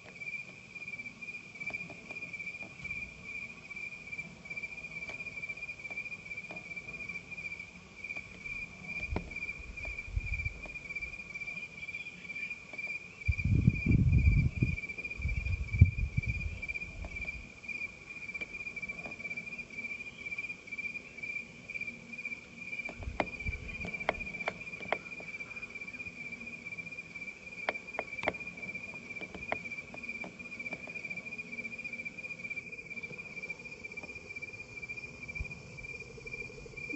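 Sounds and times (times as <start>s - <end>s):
crickets chirping: 0.0s - 36.9s.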